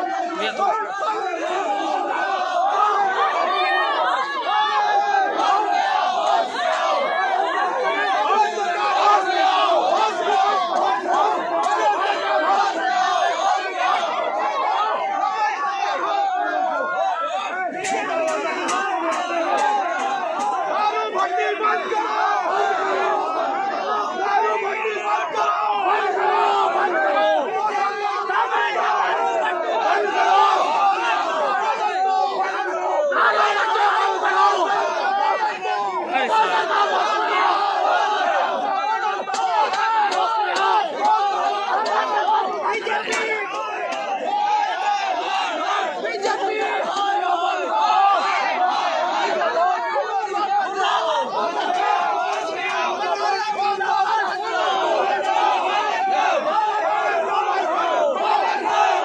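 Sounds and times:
crowd shouting: 0.0 - 59.0.

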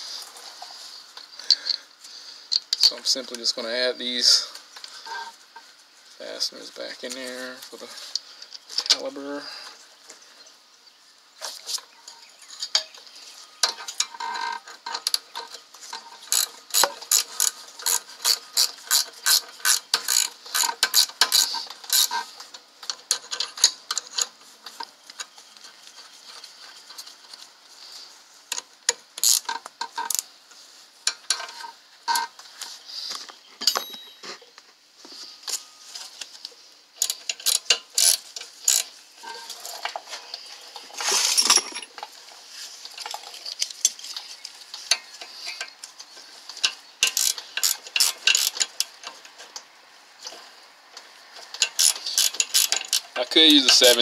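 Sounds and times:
ratchet wrench clicking: 16.2 - 22.2, 29.2 - 30.2, 37.0 - 38.9, 47.0 - 48.9, 51.6 - 54.0
handling noise: 37.2 - 49.6.

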